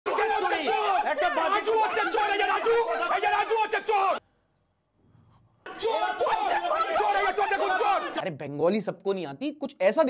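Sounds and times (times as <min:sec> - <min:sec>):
men shouting over one another: 0:00.1 - 0:04.2, 0:05.7 - 0:08.2.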